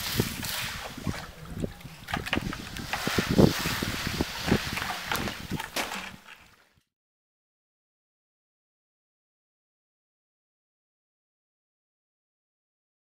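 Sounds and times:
wind noise on microphone: 0.0 - 6.6
knocks and scraping: 0.0 - 6.8.

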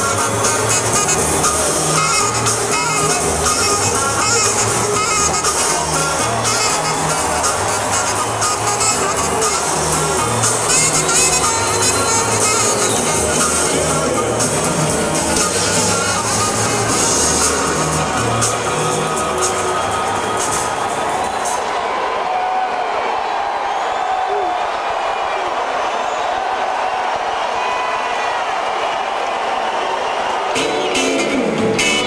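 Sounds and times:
rock band playing: 0.0 - 21.7, 30.4 - 32.0
crowd cheering and whistling: 0.0 - 32.0.

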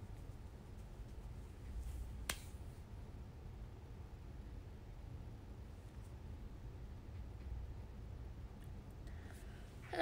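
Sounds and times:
faint low room rumble: 0.0 - 10.0.

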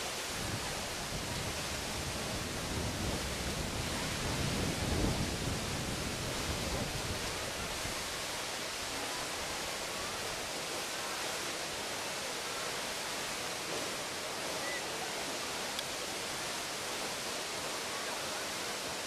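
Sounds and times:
deep rumble of water: 0.0 - 12.0
water gushing into river: 0.0 - 19.0.

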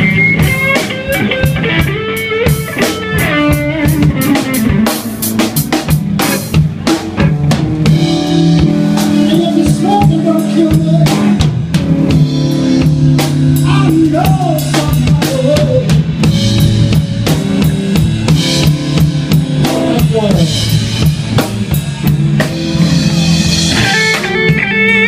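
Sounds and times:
blues band playing: 0.0 - 25.0.

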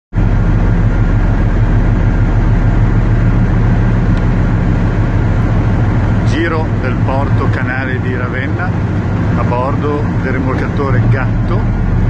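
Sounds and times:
diesel engine drone: 0.1 - 12.0
wind: 0.1 - 12.0.

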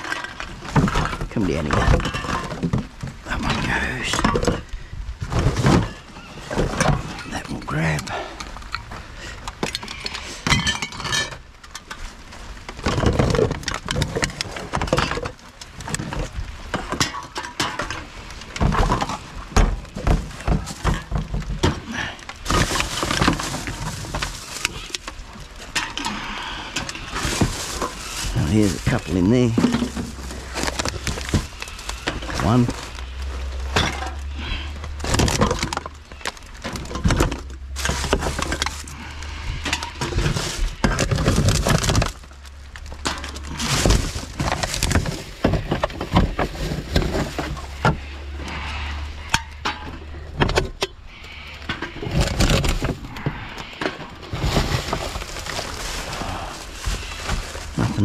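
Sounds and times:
plastic bags rustling: 0.0 - 58.0
cans and bottles clinking: 9.6 - 11.4, 19.9 - 42.2.

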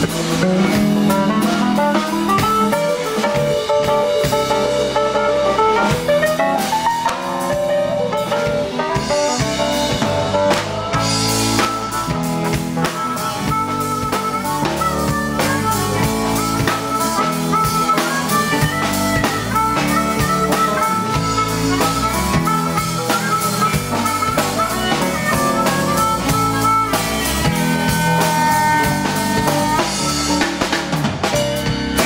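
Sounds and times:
bass guitar: 0.0 - 32.0
drum kit: 0.0 - 32.0
electric keyboard melody: 0.0 - 32.0
harmonica long held notes: 0.0 - 32.0.

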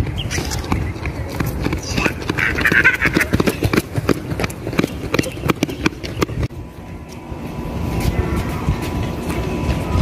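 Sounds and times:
running footsteps on rubber track: 0.0 - 10.0.

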